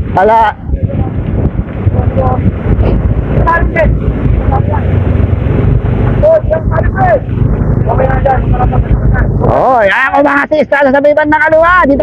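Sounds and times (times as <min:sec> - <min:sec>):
wind rushing over microphone: 0:00.0 - 0:10.5
low engine rumble: 0:00.0 - 0:12.0.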